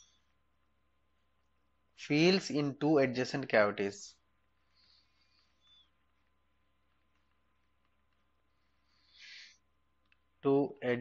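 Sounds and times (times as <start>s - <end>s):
soft breath: 4.6s - 6.3s, 8.4s - 9.8s.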